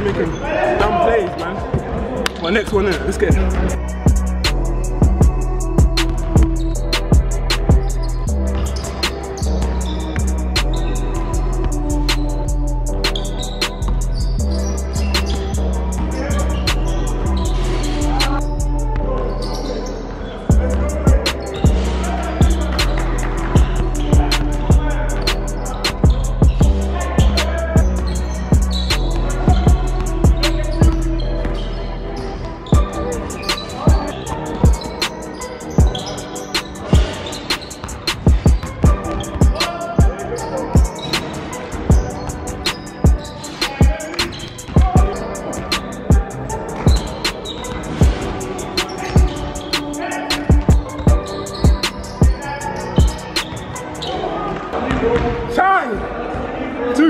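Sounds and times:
background music with bass line: 2.8s - 19.4s, 20.5s - 53.8s.

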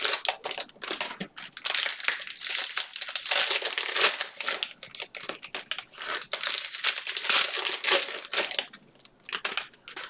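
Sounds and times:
plastic wrappers crinkling: 0.0s - 10.0s.

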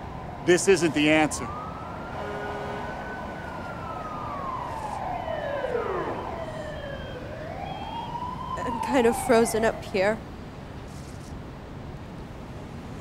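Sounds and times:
emergency vehicle sirens wailing: 0.0s - 10.4s
city noise hum: 0.0s - 13.0s.

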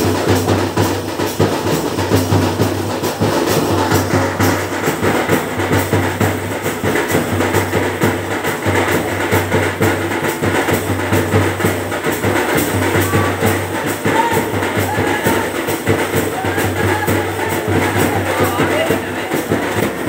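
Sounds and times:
fast live drumming: 0.0s - 20.0s.

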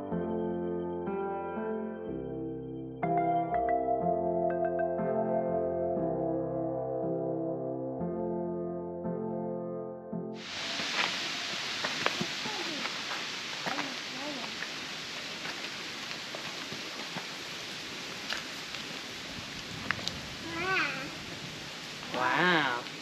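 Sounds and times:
background music: 0.0s - 10.4s
footsteps on dirt trail: 10.4s - 20.3s
outdoor hiss: 10.4s - 23.0s
child's voice: 12.4s - 12.9s, 13.7s - 14.6s, 20.4s - 21.2s.

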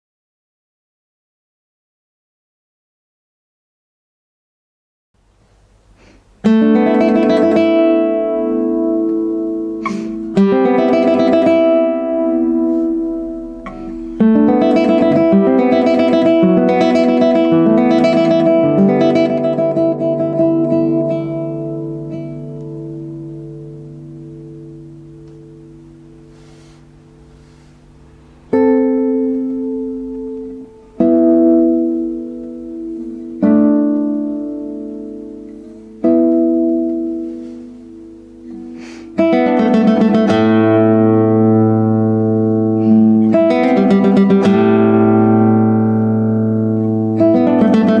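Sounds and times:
classical guitar playing: 6.4s - 48.0s.

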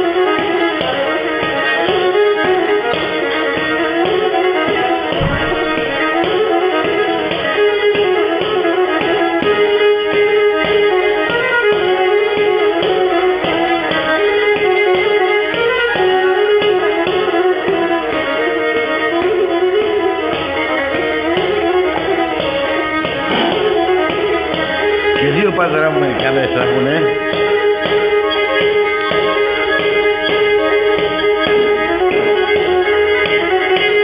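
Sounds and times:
bowed lyra folk tune: 0.0s - 34.0s.

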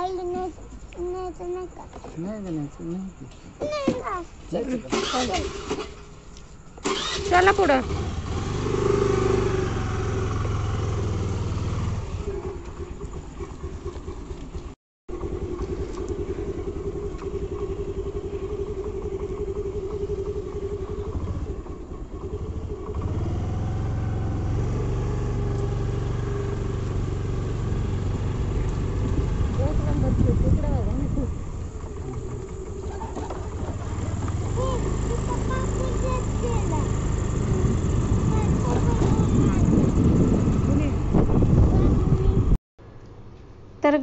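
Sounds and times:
motorcycle engine running: 6.8s - 42.6s.

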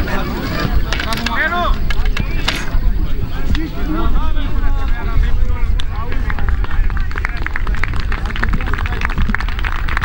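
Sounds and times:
people talking and calling out: 0.0s - 9.9s
wind rumble on microphone: 0.0s - 10.0s.

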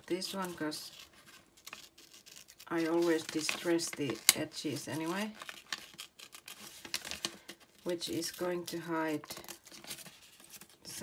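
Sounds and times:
paper rustling: 0.2s - 11.0s.

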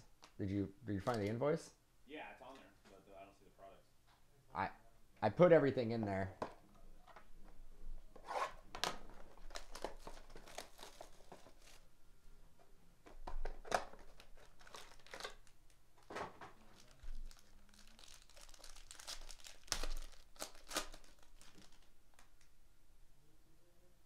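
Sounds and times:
packaging crinkling and tearing: 8.8s - 11.9s, 13.5s - 22.4s.

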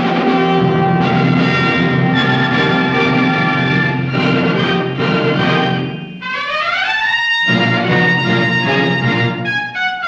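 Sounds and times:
orchestral music with brass: 0.0s - 10.0s.

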